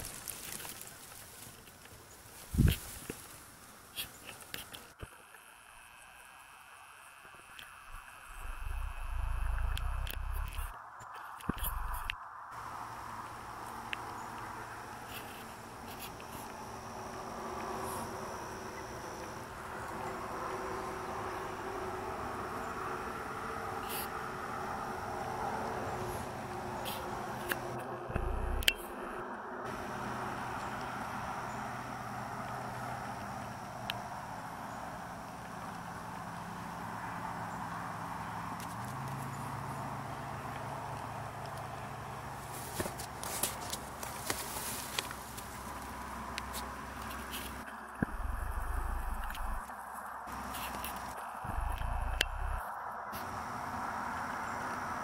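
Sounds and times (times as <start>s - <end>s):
insects buzzing: 0.0s - 40.4s, 41.1s - 55.0s
low microphone rumbles: 8.3s - 10.8s, 11.5s - 12.2s, 28.1s - 29.2s, 48.0s - 49.6s, 51.4s - 52.6s.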